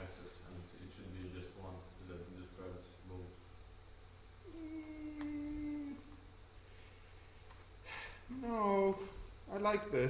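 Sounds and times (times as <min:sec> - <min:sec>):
person humming: 0:04.4 - 0:06.3.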